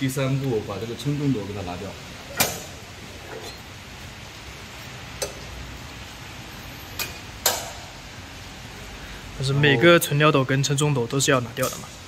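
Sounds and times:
metal hoppers clicking: 2.3s - 3.6s, 7.0s - 7.9s, 11.6s - 12.0s.

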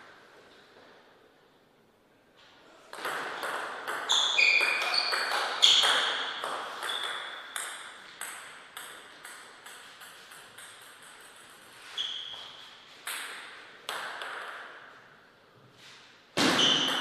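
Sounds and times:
ping pong ball hitting paddles: 2.9s - 12.4s, 13.0s - 14.9s, 16.4s - 17.0s
ball bouncing on floor: 2.9s - 14.8s, 16.4s - 17.0s.

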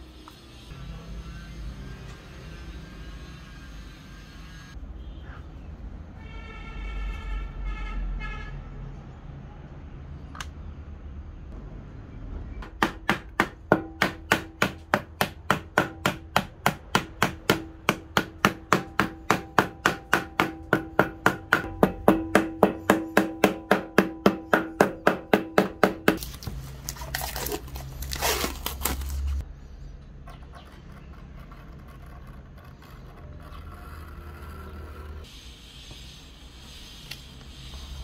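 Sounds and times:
hammer tapping metal plate: 12.6s - 26.2s
plastic film rustling: 26.2s - 29.4s.

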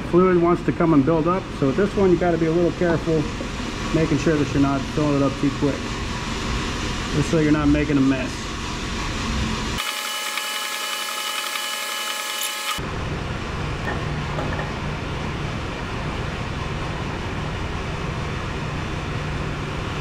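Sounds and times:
industrial machinery drone: 0.0s - 20.0s
high whining tones: 9.8s - 12.8s.

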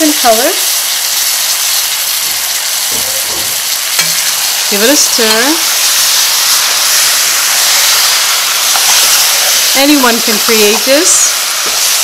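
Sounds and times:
chicken frying in oil: 0.0s - 12.0s.

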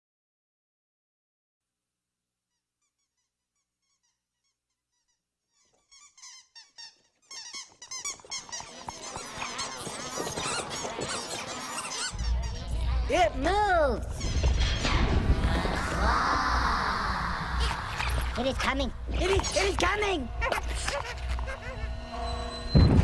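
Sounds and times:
chorus of high squeaks: 2.9s - 13.0s, 14.1s - 15.0s, 19.2s - 23.0s
low rumble: 14.1s - 19.2s.

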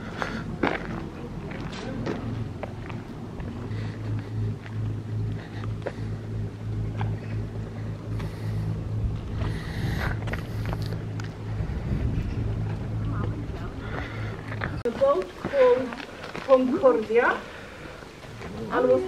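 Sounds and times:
engine humming steadily: 0.0s - 19.0s.

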